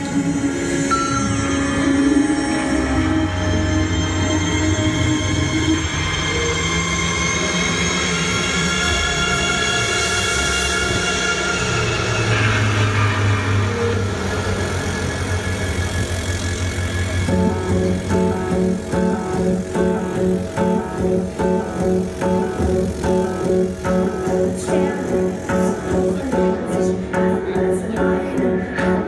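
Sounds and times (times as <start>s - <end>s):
electronic rock over loudspeakers: 0.0s - 29.0s.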